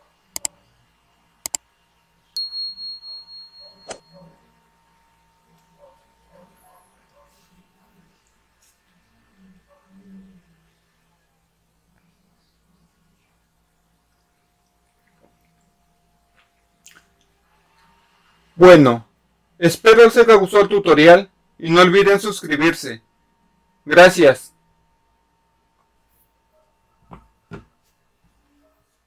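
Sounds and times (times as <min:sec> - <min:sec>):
faint electrical hum: 0:00.0 - 0:29.0
notification bell chime: 0:02.4 - 0:04.2.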